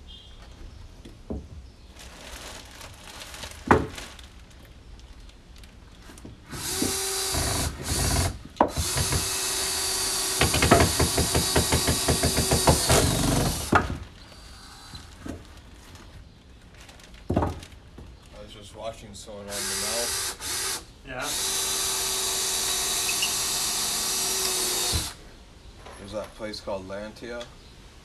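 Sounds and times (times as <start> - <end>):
cordless drill driving screw: 6.5 - 13.7, 19.5 - 25.2.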